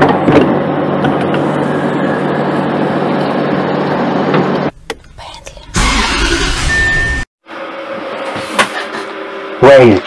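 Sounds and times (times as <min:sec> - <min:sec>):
loud noisy burst: 0:05.8 - 0:07.2.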